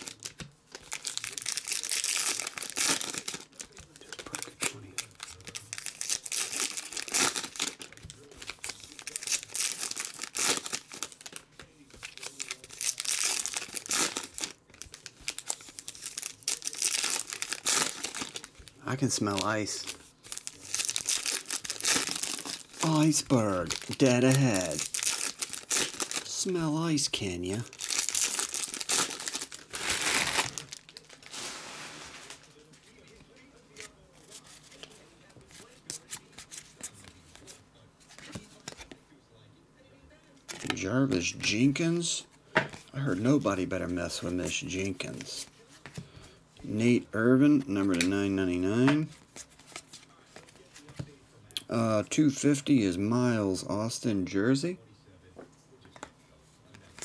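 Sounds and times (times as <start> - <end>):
foil wrappers crinkling and tearing: 0.0 - 37.5.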